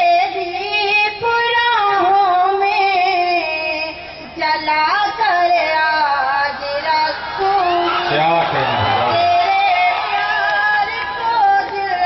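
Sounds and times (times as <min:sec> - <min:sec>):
woman singing verse: 0:00.0 - 0:08.1, 0:09.1 - 0:12.0.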